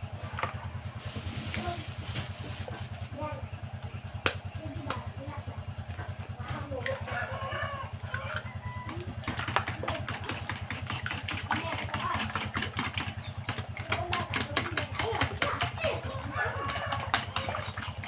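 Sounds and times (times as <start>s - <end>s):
low motor hum: 0.0s - 18.0s
fork beating eggs in metal bowl: 9.1s - 18.0s.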